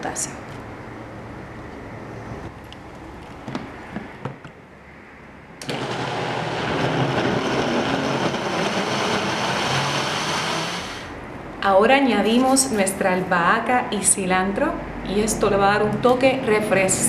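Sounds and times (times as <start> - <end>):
countertop blender running: 5.6 - 11.1.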